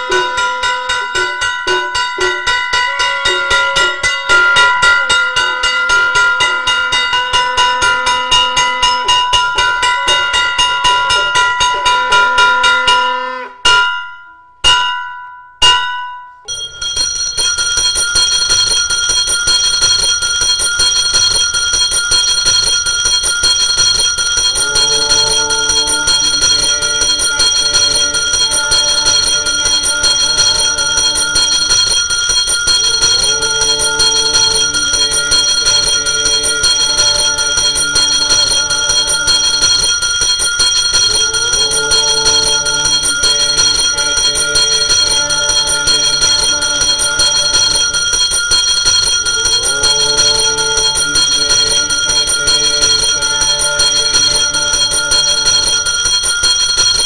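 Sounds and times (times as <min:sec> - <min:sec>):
temple bell ringing: 0:00.0 - 0:57.0.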